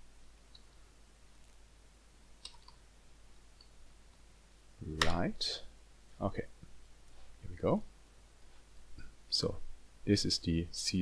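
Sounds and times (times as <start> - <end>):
computer keys clicking: 2.4 - 2.8.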